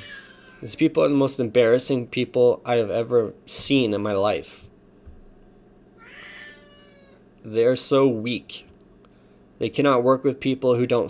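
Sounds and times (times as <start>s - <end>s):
faint high-pitched cry: 0.0s - 0.7s, 6.0s - 7.2s.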